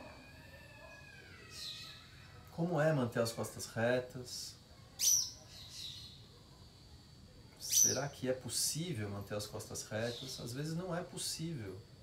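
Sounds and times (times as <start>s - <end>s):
faint birds chirping: 0.0s - 12.0s
man speaking: 2.6s - 4.6s, 7.8s - 11.9s.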